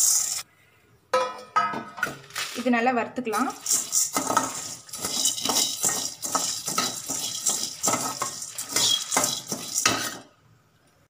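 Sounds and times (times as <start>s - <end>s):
lentils rattling: 3.4s - 10.2s
ladle scraping metal pan: 3.4s - 10.3s.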